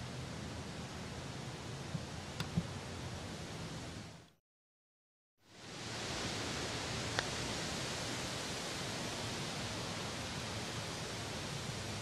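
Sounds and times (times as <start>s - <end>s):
outdoor rushing hiss: 5.4s - 12.0s.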